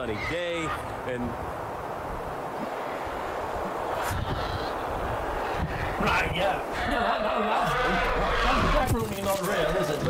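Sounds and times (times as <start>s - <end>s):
wind on microphone: 1.4s - 6.9s.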